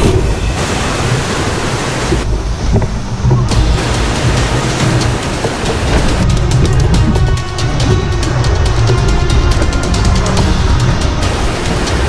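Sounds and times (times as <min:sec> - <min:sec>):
whitewater rapids rushing: 0:00.0 - 0:12.0
music: 0:02.2 - 0:12.0.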